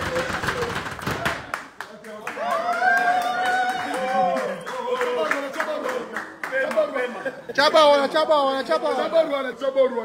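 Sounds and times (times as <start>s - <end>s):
men clapping in rhythm: 0.0s - 7.3s.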